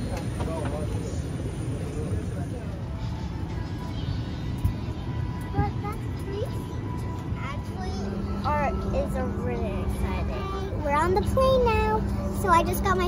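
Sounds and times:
cabin air system rumble: 0.0 - 13.0
steady hum: 0.0 - 13.0.

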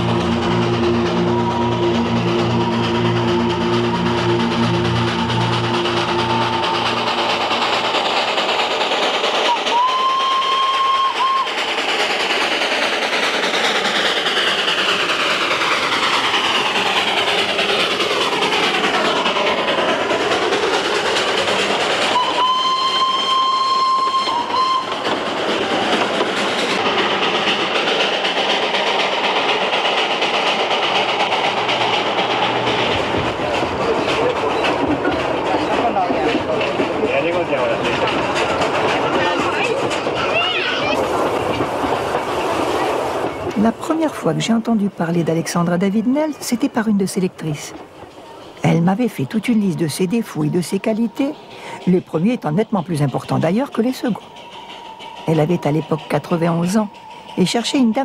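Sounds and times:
steam train running: 0.0 - 58.0
steam train whistle blasts: 9.5 - 11.5, 22.2 - 25.0.

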